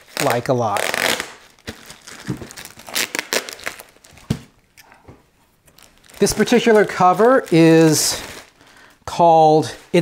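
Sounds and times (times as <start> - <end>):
plastic wrapping crinkling: 0.0 - 5.0, 5.6 - 9.0.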